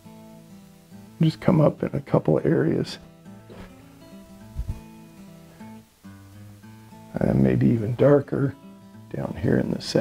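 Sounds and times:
acoustic guitar soft notes: 0.0s - 10.0s.

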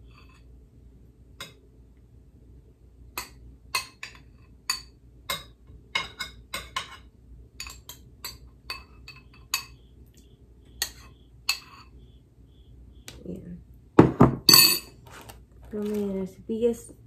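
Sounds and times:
metal spoon clinking in ceramic bowl: 3.2s - 9.9s, 10.8s - 11.9s, 14.5s - 15.0s.

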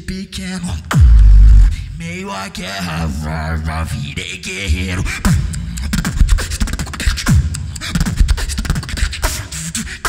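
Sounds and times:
beatboxing into a microphone: 0.0s - 10.0s.

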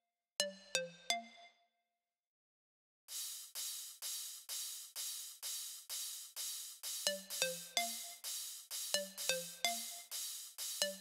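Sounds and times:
electronic music: 6.8s - 11.0s.

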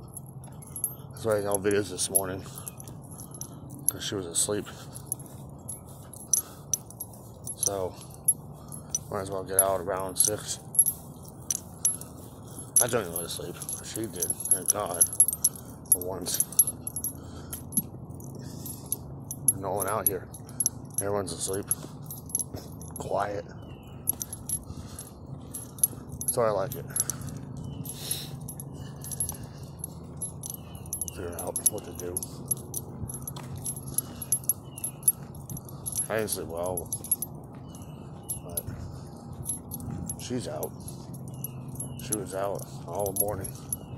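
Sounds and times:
light metallic jingling: 0.0s - 43.9s
low steady hum: 0.0s - 43.9s
small metal pieces clinking: 4.7s - 23.1s, 23.8s - 43.9s.

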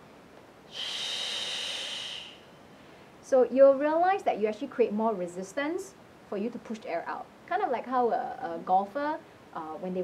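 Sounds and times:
woman's forceful shh exhale: 0.7s - 2.6s.

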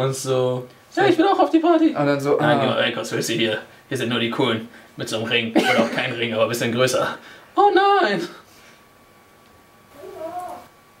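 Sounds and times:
meow-like call: 9.9s - 10.7s.

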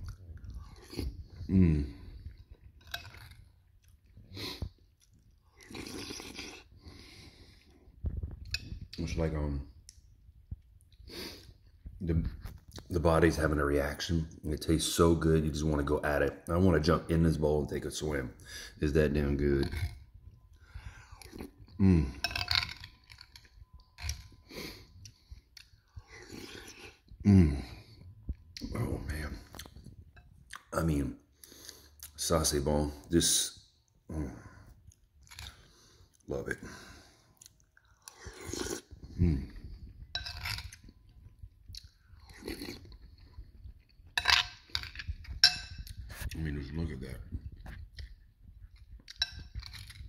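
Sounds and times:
chewing food: 0.0s - 9.2s, 19.0s - 30.7s, 33.8s - 50.0s.

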